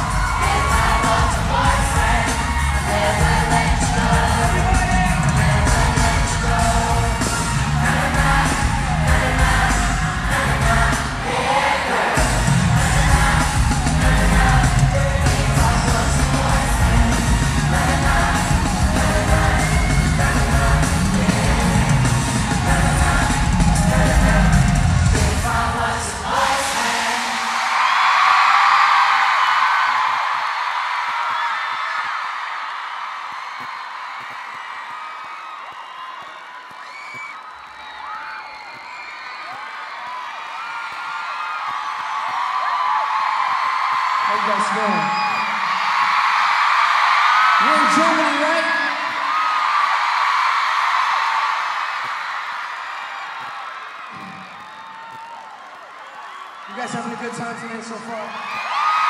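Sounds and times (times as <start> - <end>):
live band music with singing: 0.0 - 27.8
crowd screaming and cheering: 0.0 - 59.0.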